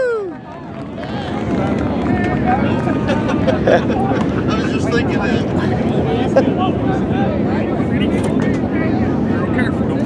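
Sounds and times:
racing engines rumbling: 0:00.2 - 0:10.0.

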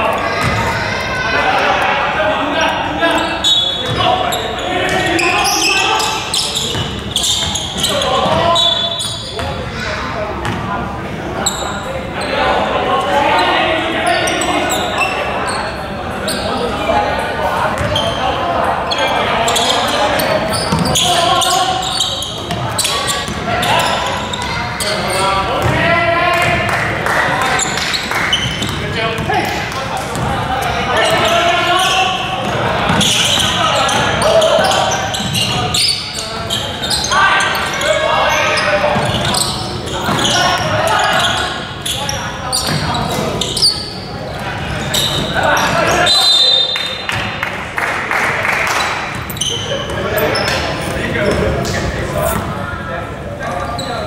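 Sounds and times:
players calling out: 0:00.0 - 0:54.0.

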